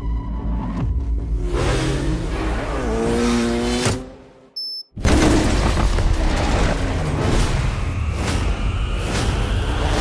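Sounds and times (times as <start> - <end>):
racing car engines revving: 1.2 - 4.4, 6.1 - 10.0
short high-pitched beep: 4.6 - 5.0.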